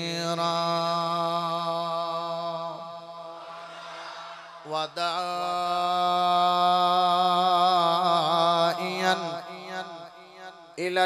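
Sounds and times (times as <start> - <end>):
man chanting: 0.0 - 3.4, 4.6 - 11.0.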